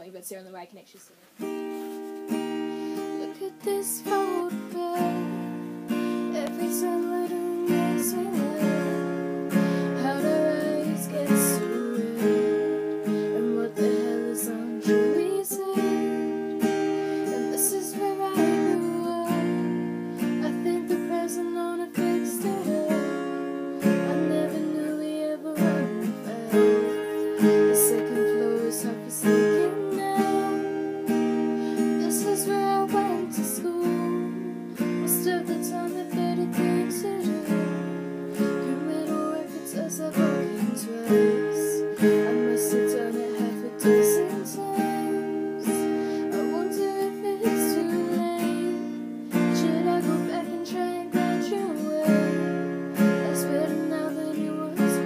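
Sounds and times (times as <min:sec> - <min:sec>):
strummed acoustic guitar: 0:01.3 - 0:55.0
woman singing a slow ballad: 0:03.0 - 0:55.0.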